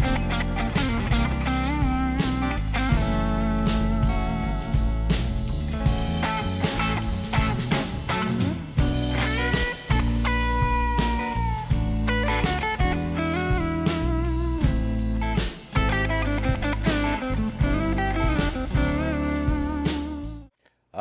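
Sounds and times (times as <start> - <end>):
bass guitar: 0.0 - 20.5
electric guitar lead bending notes: 0.0 - 20.5
steady drum beat: 0.0 - 20.5.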